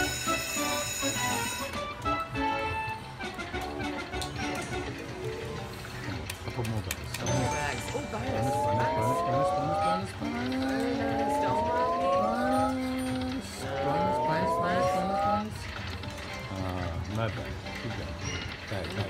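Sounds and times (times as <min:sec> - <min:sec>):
casino hubbub: 0:00.0 - 0:19.0
rising electronic glides: 0:08.1 - 0:15.6.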